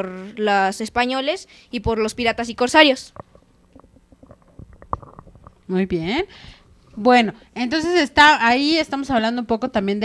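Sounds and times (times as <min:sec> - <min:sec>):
microphone handling noise: 0:03.1 - 0:07.1.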